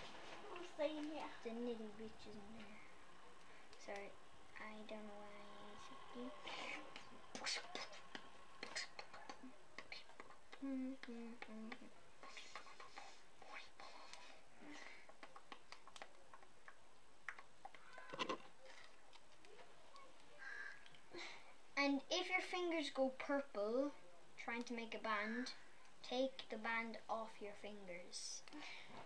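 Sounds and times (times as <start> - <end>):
person whispering: 5.5 - 16.4.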